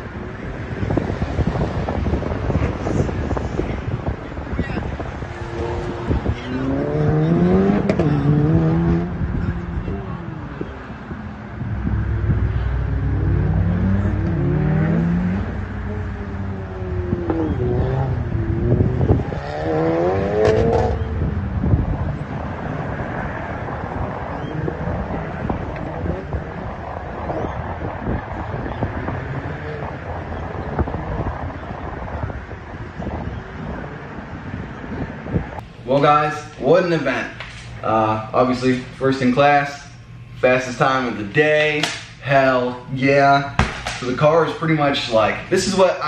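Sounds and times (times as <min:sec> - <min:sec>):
car engine revving: 0:00.6 - 0:35.6.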